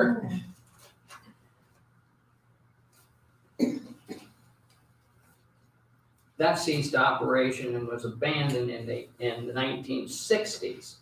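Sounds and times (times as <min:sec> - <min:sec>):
faint room hum: 0:00.0 - 0:11.0
person coughing: 0:03.6 - 0:04.4.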